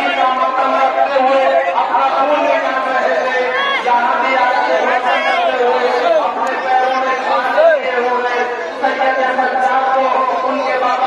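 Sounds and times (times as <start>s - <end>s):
crowd of men chanting: 0.0s - 11.0s.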